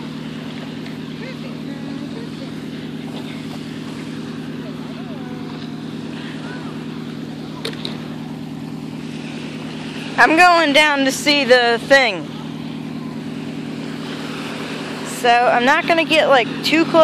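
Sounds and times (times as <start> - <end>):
outdoor noise: 0.0 - 17.0
steady low engine drone: 0.0 - 17.0.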